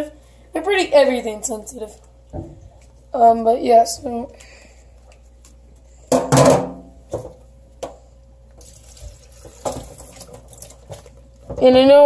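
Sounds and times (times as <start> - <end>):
knocks against a sink: 6.1 - 7.3
water splashing in a steel sink: 8.6 - 11.3
water trickling: 8.6 - 11.3.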